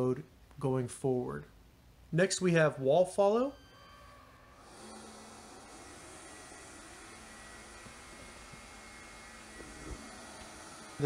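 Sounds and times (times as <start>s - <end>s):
faint high steady tone: 2.6s - 4.6s
robot vacuum whirring: 4.0s - 11.0s.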